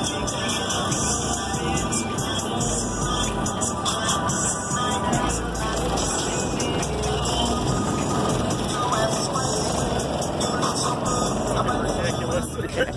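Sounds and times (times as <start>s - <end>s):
heavy bass music through subwoofer: 0.0s - 12.9s.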